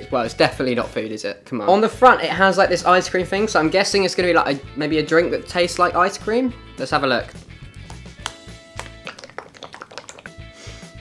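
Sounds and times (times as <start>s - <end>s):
quiet background music: 0.0s - 11.0s
plastic pouch crinkling: 7.8s - 10.3s.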